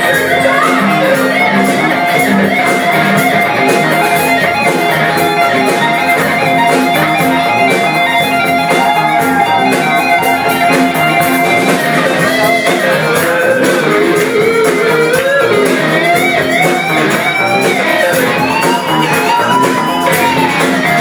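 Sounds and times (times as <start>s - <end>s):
guitar: 0.0s - 21.0s
live funk band: 0.0s - 21.0s.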